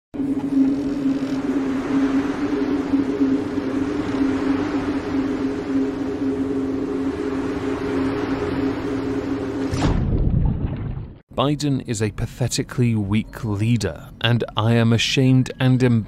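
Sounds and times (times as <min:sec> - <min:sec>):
low two-tone drone: 0:00.1 - 0:10.1.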